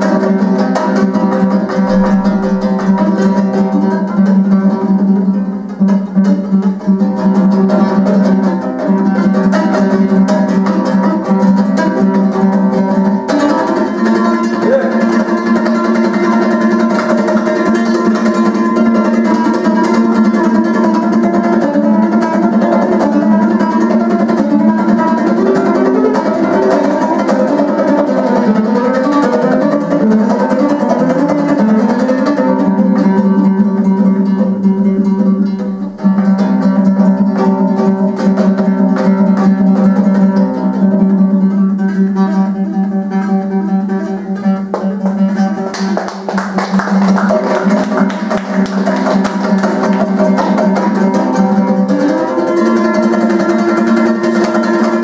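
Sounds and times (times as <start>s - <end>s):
dombra strummed quickly: 0.0s - 55.0s.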